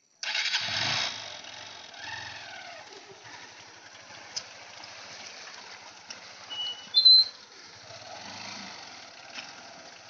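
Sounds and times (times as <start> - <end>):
motorcycle engine starting and running: 0.2 - 10.0.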